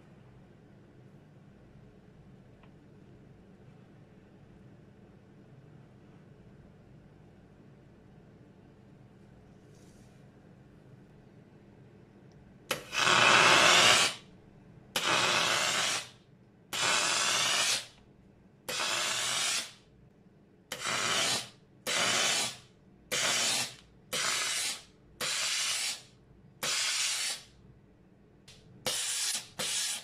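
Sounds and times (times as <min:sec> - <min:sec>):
steam gun hissing: 0:12.7 - 0:14.2, 0:15.0 - 0:16.2, 0:16.8 - 0:17.9, 0:18.7 - 0:19.8, 0:20.7 - 0:27.5, 0:28.8 - 0:30.0.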